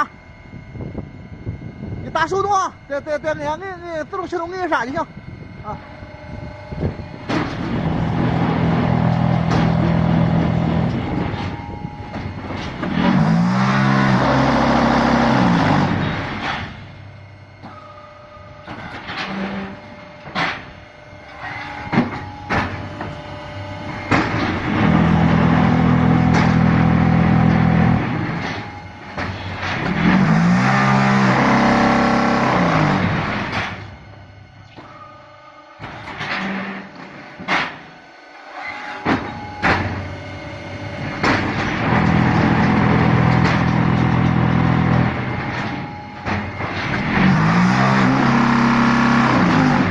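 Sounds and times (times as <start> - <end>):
machine humming: 0.0 - 49.9.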